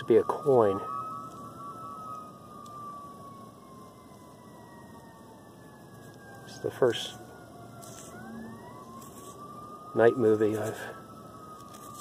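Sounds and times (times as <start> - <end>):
faint siren wailing: 0.0 - 12.0.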